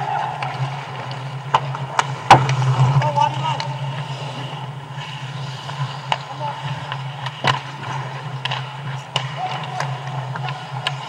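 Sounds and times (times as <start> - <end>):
hockey sticks and puck clacking: 0.0 - 11.0
low arena hum: 0.0 - 11.0
skate blades scraping ice: 0.0 - 11.0
faint shouts of players: 9.2 - 10.8.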